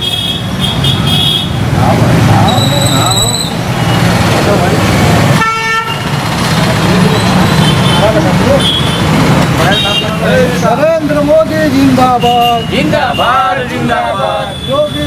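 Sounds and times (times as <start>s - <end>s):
street noise: 0.0s - 15.0s
vehicle horn tooting: 5.4s - 6.1s
crowd chatter: 9.5s - 15.0s.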